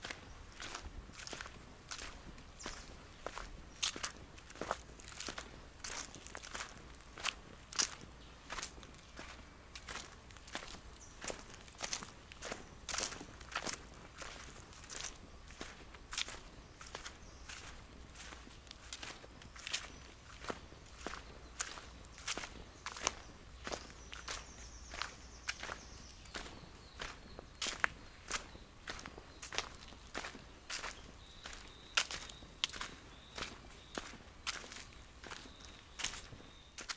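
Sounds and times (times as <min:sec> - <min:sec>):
footsteps on dry leaves: 0:00.0 - 0:36.9.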